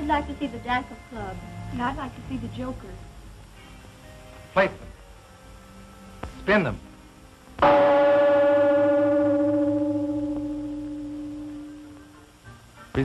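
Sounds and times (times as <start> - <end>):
gong ringing: 7.6 - 12.2.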